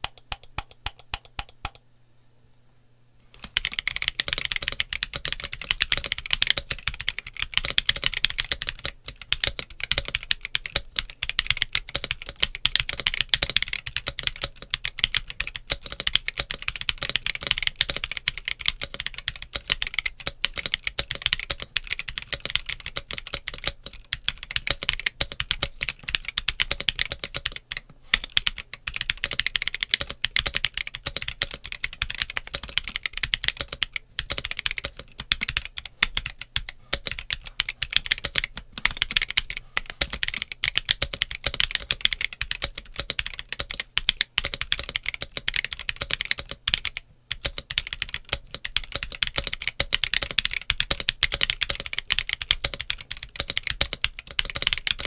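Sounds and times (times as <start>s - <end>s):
fast mechanical keyboard typing: 0.0s - 1.8s, 3.4s - 55.0s.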